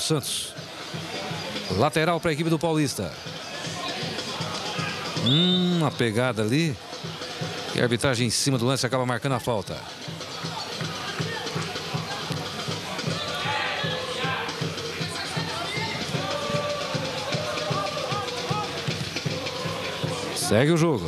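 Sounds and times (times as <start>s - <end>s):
stadium crowd: 0.0s - 21.0s
drums beating: 0.5s - 21.0s
crowd singing or chanting: 3.3s - 6.0s, 10.6s - 21.0s.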